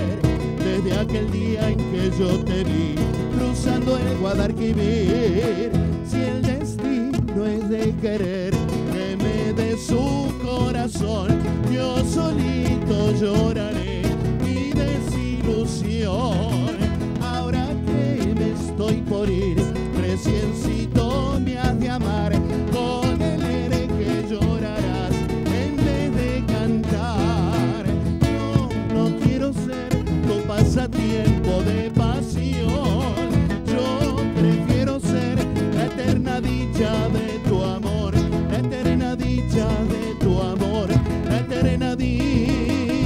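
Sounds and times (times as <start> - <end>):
electric bass: 0.0 - 43.0
nylon-string guitar melody: 0.0 - 43.0
strummed acoustic guitar: 0.0 - 43.0.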